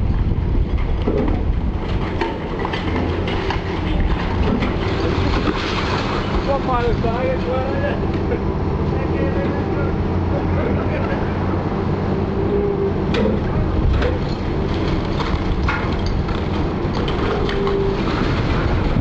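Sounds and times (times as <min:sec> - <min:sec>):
diesel engine running: 0:00.0 - 0:19.0
breaking masonry crunching: 0:01.1 - 0:06.7
wavering squeal: 0:12.2 - 0:13.1.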